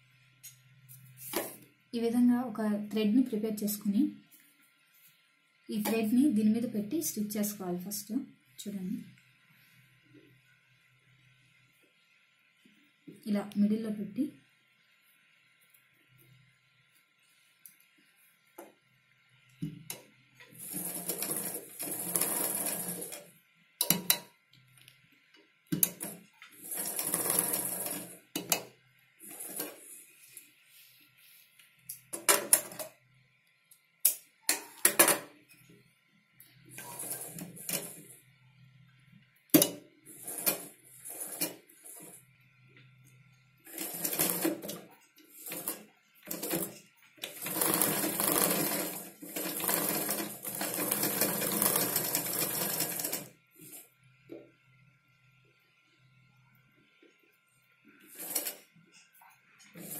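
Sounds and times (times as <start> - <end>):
sewing machine stitching: 20.4 - 24.0, 25.8 - 28.6, 29.2 - 30.0, 36.7 - 38.1, 40.1 - 42.2, 43.7 - 53.8, 58.0 - 58.7, 59.6 - 59.9.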